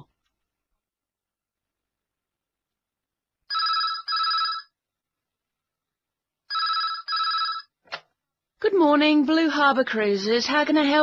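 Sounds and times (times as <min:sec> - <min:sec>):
telephone double ring: 0:03.5 - 0:04.7, 0:06.5 - 0:07.7.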